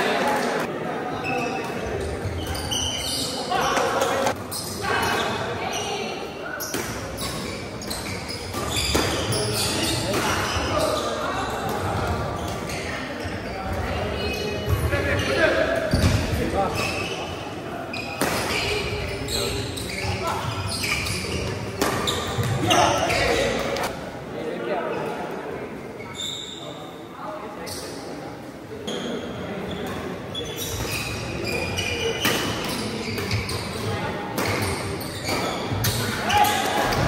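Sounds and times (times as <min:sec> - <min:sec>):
voices chattering: 0:00.0 - 0:37.0
shoes squeaking on court: 0:01.2 - 0:23.9, 0:26.0 - 0:26.8, 0:28.8 - 0:37.0.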